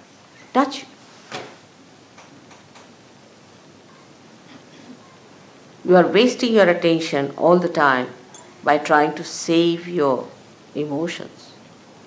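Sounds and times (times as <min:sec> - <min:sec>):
old recording hiss: 0:00.0 - 0:12.0.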